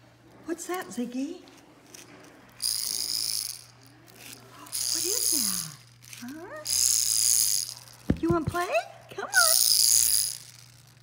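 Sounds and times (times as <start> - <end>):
plastic toy rattling: 1.5 - 11.0.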